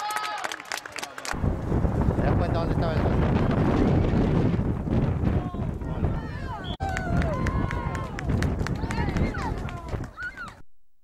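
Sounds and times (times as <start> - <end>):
low rumble: 1.4 - 8.9.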